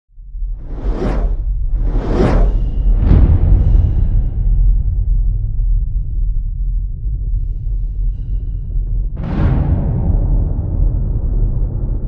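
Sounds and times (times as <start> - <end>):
steady deep rumble: 0.1 - 12.0
whoosh sound effects: 0.6 - 3.1.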